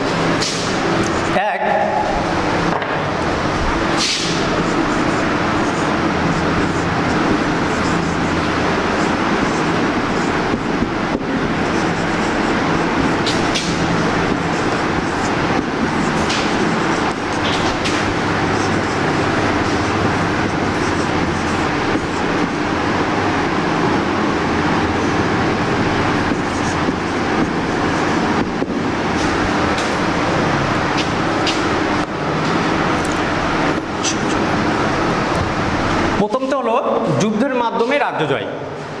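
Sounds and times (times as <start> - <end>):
marker squeaking on whiteboard: 0.0 - 1.4, 3.7 - 23.5, 24.3 - 30.2, 30.8 - 32.1, 33.0 - 34.5
mechanical drone: 0.0 - 36.2.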